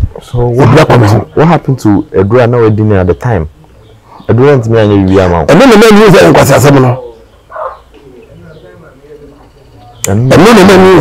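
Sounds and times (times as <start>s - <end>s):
speech: 0.2s - 3.5s, 4.3s - 7.3s, 8.0s - 11.0s
dove cooing: 7.0s - 10.0s.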